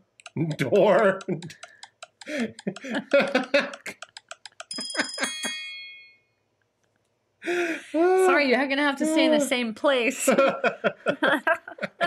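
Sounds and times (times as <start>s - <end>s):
sharp clicks: 0.0s - 4.8s
people laughing: 0.4s - 4.0s, 4.7s - 5.6s, 9.0s - 12.0s
small bell ringing: 4.7s - 6.4s.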